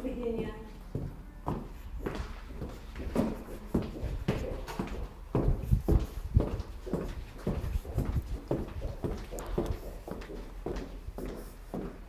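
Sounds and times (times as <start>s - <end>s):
footsteps on hard floor: 0.8s - 12.0s.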